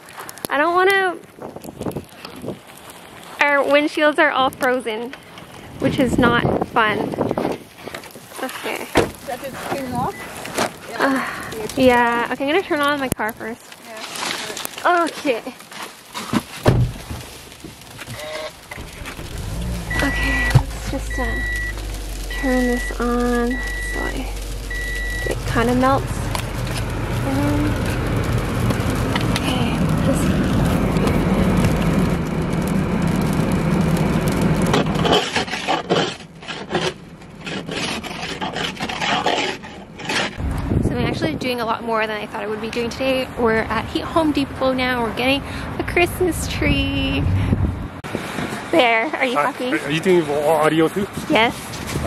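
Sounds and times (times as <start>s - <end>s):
ice scraper scraping windshield: 15.7s - 29.4s, 34.3s - 40.4s
low rumble: 16.9s - 35.1s, 46.1s - 48.0s
car engine starting and idling: 16.9s - 35.2s
high beep: 19.9s - 25.7s.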